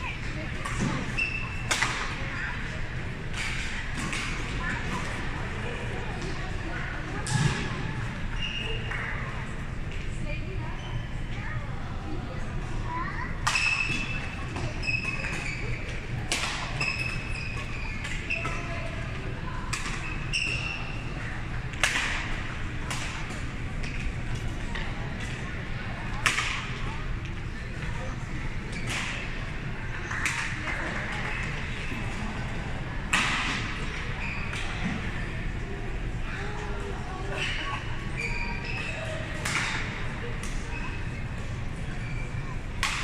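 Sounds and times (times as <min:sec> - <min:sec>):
court shoes squeaking: 0:00.0 - 0:11.6, 0:12.9 - 0:43.0
shoes squeaking on court: 0:00.1 - 0:01.8, 0:13.5 - 0:19.0, 0:20.0 - 0:21.1, 0:34.0 - 0:35.0, 0:37.4 - 0:39.8.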